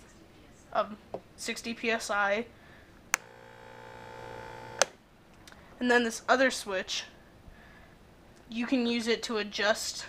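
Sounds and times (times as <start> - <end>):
electric pump humming: 3.1 - 5.0.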